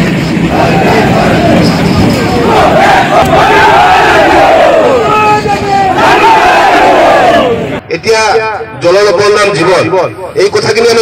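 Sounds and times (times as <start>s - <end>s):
crowd of protesters shouting: 0.5s - 7.8s.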